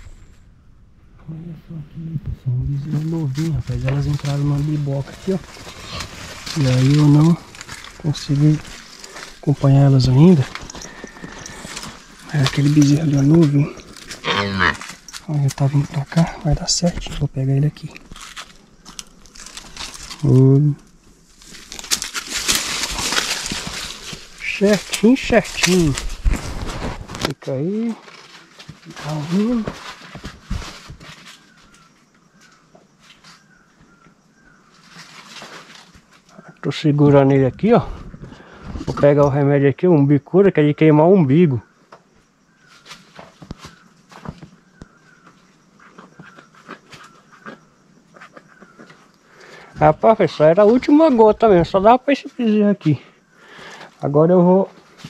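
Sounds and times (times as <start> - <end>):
faint rustling of hands: 2.8 - 16.4
dry leaves rustling and crackling: 2.8 - 33.5, 34.7 - 36.3
faint high chirps: 8.0 - 15.2.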